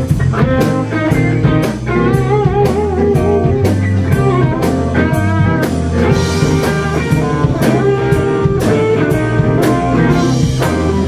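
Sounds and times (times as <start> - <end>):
drum kit cymbal strokes: 0.0 - 11.0
electric guitar bent notes: 0.0 - 11.0
keyboard: 0.0 - 11.0
low bass notes: 0.0 - 11.0.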